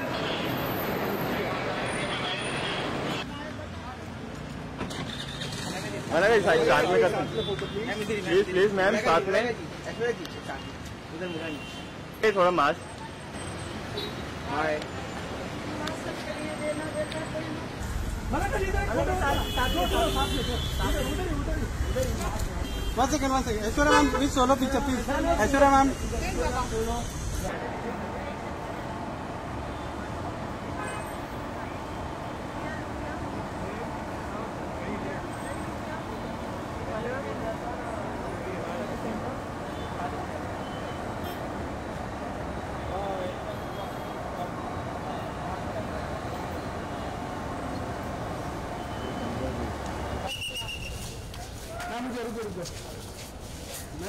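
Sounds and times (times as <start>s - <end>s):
traffic: 0.0s - 54.0s.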